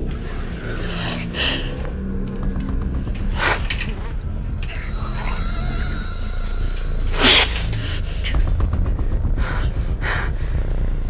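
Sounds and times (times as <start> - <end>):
dark droning horror score: 0.0 - 11.0.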